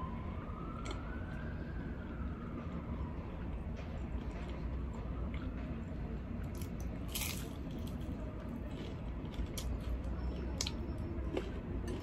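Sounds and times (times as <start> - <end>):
crunchy chewing: 6.4 - 12.0
crunchy bite into fried food: 6.5 - 12.0.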